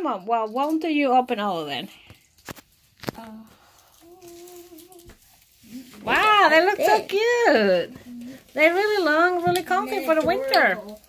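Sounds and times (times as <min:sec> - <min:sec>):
person humming a steady note: 0:04.0 - 0:05.1.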